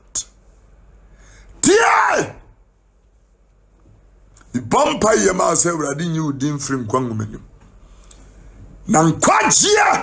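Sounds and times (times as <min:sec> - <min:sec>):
man's loud vocal sound: 0:01.6 - 0:02.6, 0:09.1 - 0:10.0.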